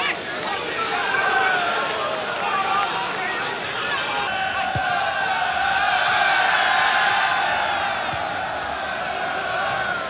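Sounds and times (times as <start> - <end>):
crowd chanting: 3.7 - 10.0.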